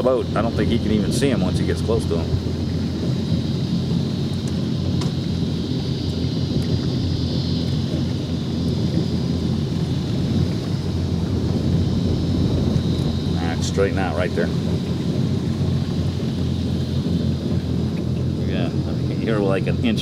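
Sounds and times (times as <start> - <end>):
boat engines idling: 0.0 - 20.0
faint high whine: 0.0 - 20.0.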